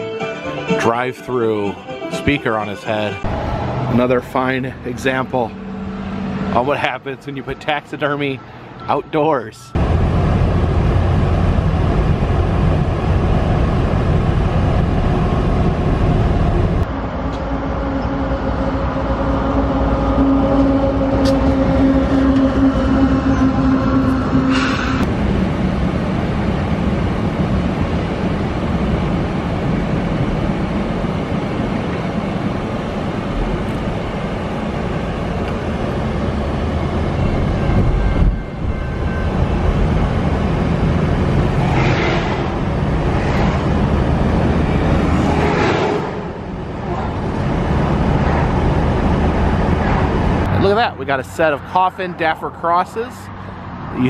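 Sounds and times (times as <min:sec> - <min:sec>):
freight train running past: 0:00.0 - 0:54.0
road and engine noise: 0:00.0 - 0:54.0
steady hum: 0:09.8 - 0:50.8.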